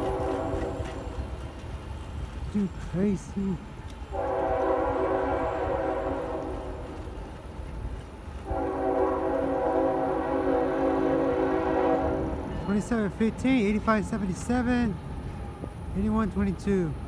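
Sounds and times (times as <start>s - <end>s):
locomotive air horn blasts: 0.0s - 1.0s, 4.1s - 6.7s, 8.4s - 12.4s.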